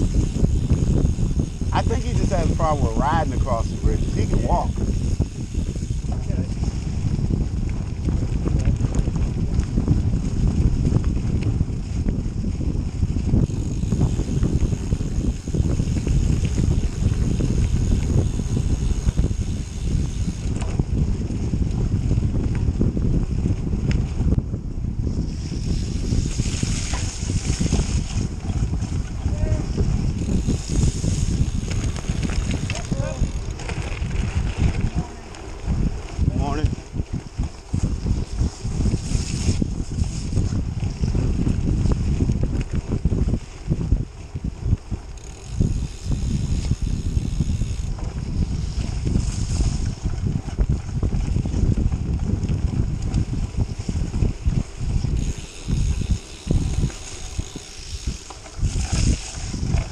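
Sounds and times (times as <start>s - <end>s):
bike tyres rolling over dirt: 0.0s - 59.9s
wind buffeting microphone: 0.0s - 59.9s.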